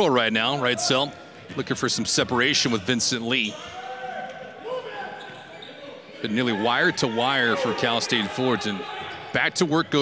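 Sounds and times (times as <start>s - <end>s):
sneaker squeals on hardwood: 5.1s - 5.9s.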